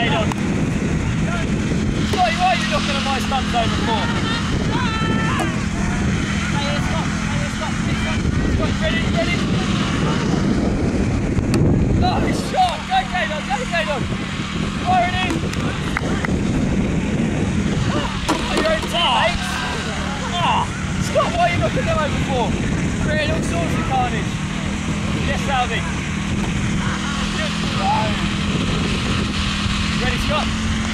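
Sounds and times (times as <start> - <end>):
wind rumbling on microphone: 0.0 - 30.9
children and adults shouting: 3.9 - 6.0.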